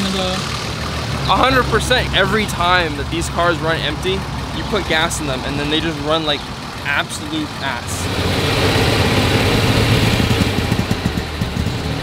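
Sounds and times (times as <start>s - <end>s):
car engine running unevenly: 0.0s - 12.0s.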